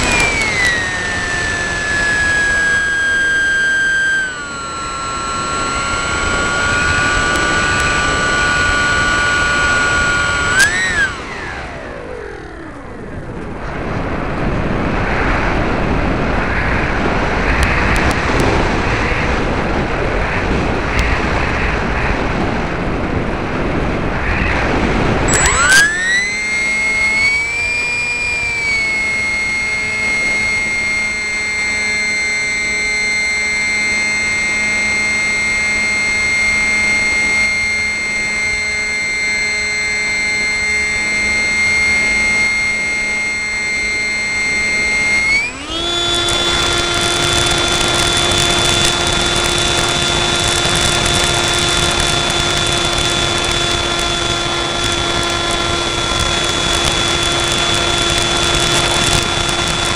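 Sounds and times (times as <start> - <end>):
electric motor and propeller whine: 0.0 - 59.9.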